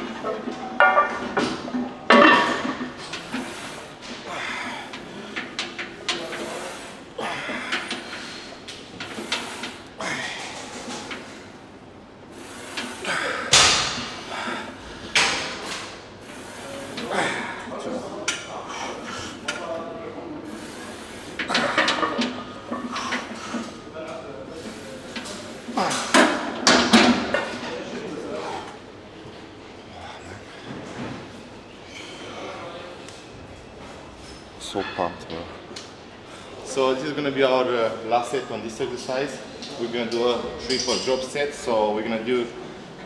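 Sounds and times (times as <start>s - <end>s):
metallic clanks of weight plates: 0.2s - 3.4s
heavy breathing: 3.2s - 5.6s, 6.2s - 11.5s, 14.1s - 15.4s.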